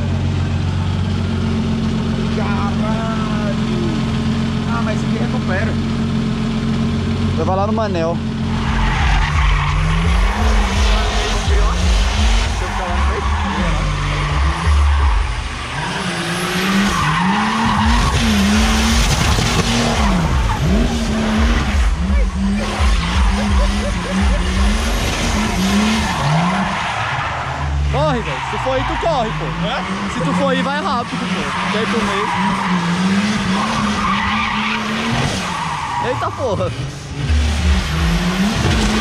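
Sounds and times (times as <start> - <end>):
car engine revving: 0.0 - 39.0
tyres squealing and skidding: 0.0 - 39.0.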